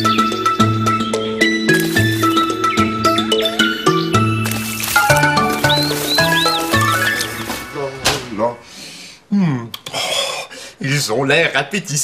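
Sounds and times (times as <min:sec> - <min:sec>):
light instrumental cartoon music: 0:00.0 - 0:08.8
cartoon bird tweets: 0:05.4 - 0:07.5.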